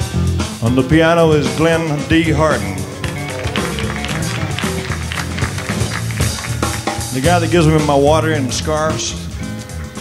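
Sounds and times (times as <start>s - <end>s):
fast piano run: 1.6s - 8.6s.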